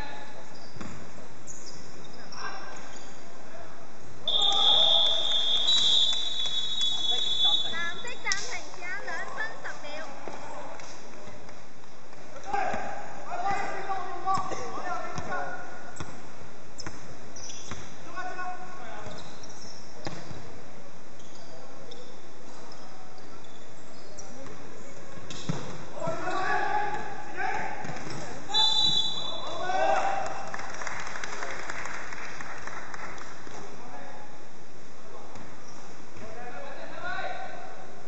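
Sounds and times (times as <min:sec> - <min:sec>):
sneakers squeaking: 0:00.0 - 0:03.5, 0:04.3 - 0:29.8
players calling out: 0:04.3 - 0:10.1.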